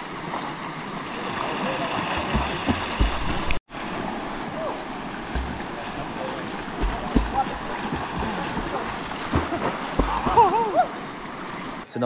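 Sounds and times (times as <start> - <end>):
people wading and splashing: 0.0 - 11.8
river flowing: 0.0 - 11.9
low thumps: 2.2 - 3.6, 5.3 - 6.0, 6.6 - 10.6.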